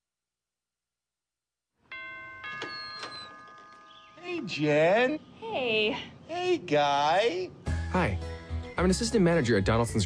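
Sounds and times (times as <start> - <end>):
two-note doorbell chime: 1.9 - 4.6.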